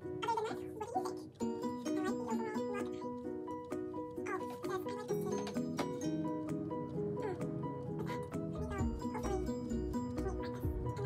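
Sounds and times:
busy melody with clicky notes: 0:00.0 - 0:11.0.

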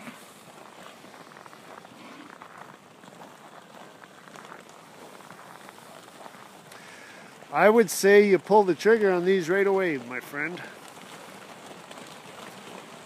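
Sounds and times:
soft crackle with small clicks: 0:00.0 - 0:13.0.

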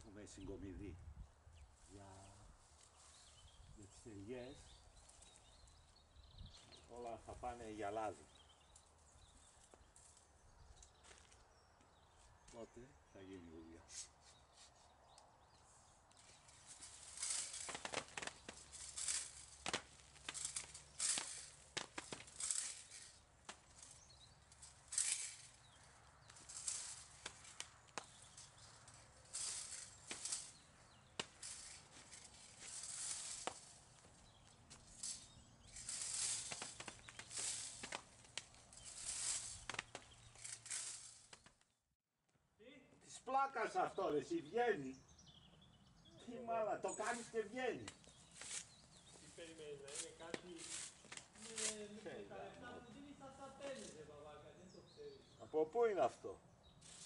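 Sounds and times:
rake swishing through leaves: 0:16.2 - 0:41.5, 0:46.9 - 0:52.2, 0:53.6 - 0:54.1, 0:56.8 - 0:57.0.

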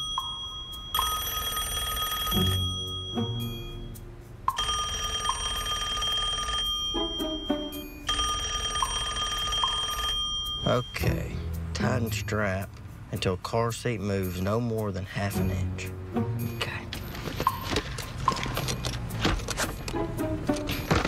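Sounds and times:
telephone bell ringing: 0:00.0 - 0:03.8, 0:04.5 - 0:11.0.

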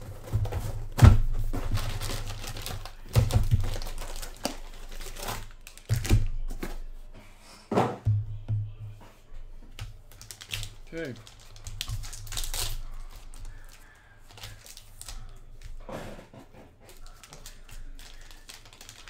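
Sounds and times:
cardboard box thuds: 0:00.2 - 0:02.0
packaging clicking and crinkling: 0:01.5 - 0:06.8, 0:09.8 - 0:15.8, 0:16.8 - 0:19.0.

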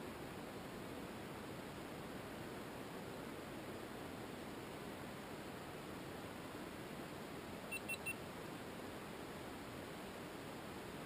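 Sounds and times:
faint hiss: 0:00.0 - 0:11.0
high electronic beeps: 0:07.7 - 0:08.2.

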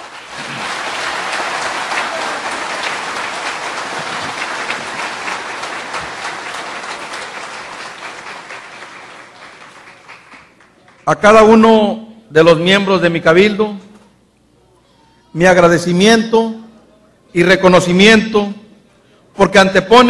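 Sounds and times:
audience applauding: 0:00.0 - 0:11.1.

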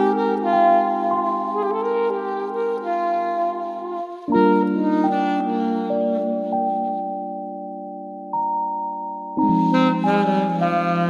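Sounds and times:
saxophone melody with vibrato: 0:00.0 - 0:08.7, 0:09.4 - 0:11.0.

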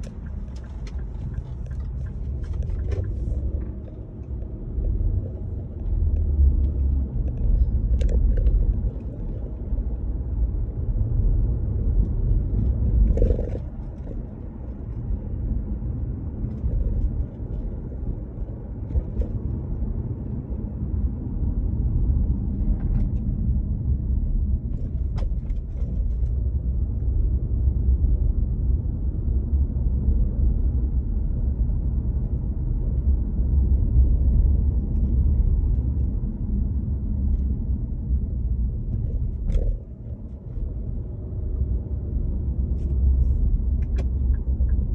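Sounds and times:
car driving rumble: 0:00.0 - 0:44.9.

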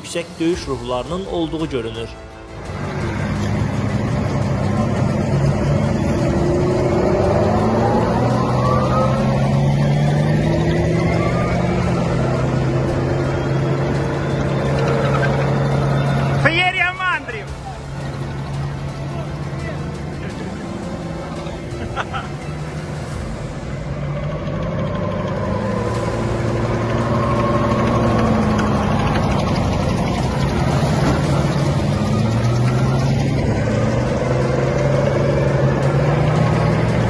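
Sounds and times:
tracked vehicles diesel engines: 0:00.0 - 0:37.0.

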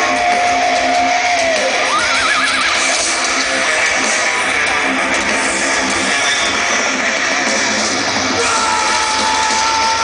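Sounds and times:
thrash metal band playing live: 0:00.0 - 0:10.0.

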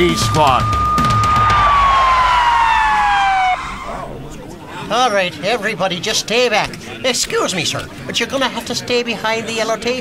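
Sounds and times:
police siren descending tone: 0:00.0 - 0:04.3.

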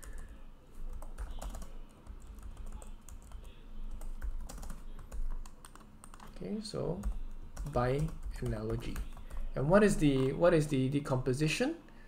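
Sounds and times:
typing on computer keyboard: 0:00.9 - 0:06.3, 0:07.0 - 0:09.5.

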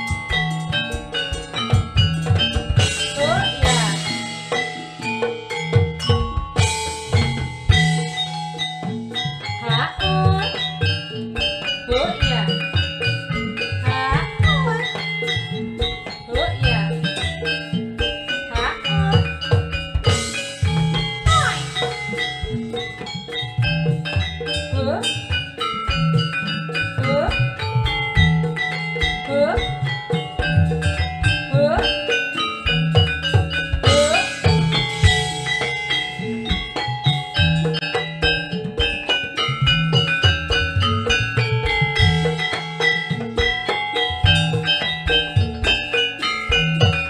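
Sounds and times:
metallophones ringing melody: 0:00.0 - 0:47.0
steady drumming: 0:00.0 - 0:47.0.

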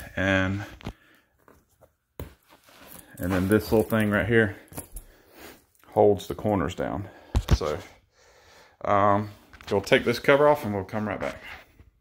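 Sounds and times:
faint handling sounds: 0:00.2 - 0:07.9.

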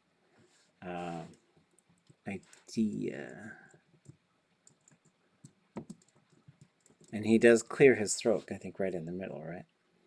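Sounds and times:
computer keyboard keystrokes: 0:04.0 - 0:07.2.

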